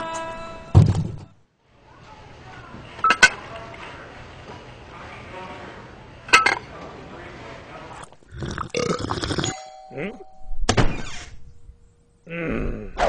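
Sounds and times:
person's non-word vocal sounds: 12.3 - 13.0.

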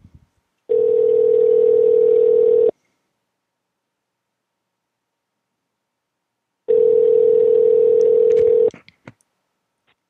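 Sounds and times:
telephone ringback tone: 0.7 - 2.7, 6.7 - 8.7.

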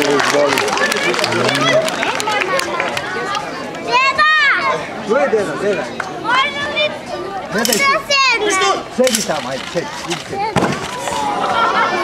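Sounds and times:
crowd chattering: 0.0 - 12.0
child shouting: 3.9 - 4.8, 6.2 - 8.8.

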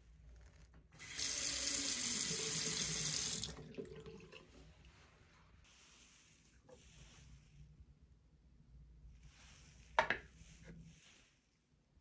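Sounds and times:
tap water running into basin: 1.0 - 4.7.

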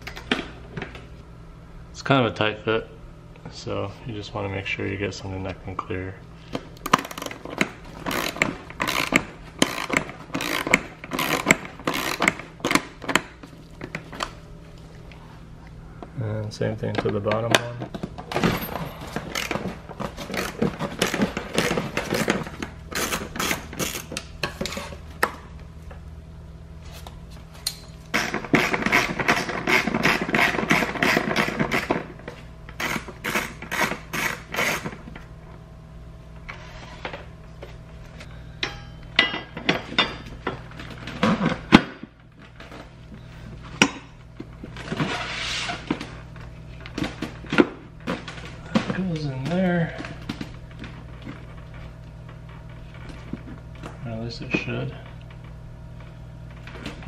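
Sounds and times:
ratchet wrench clicking: 8.1 - 12.8.

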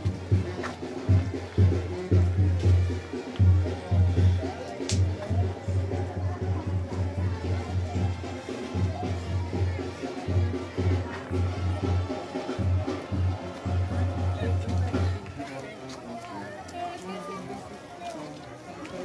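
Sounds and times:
crowd voices: 0.0 - 19.0.

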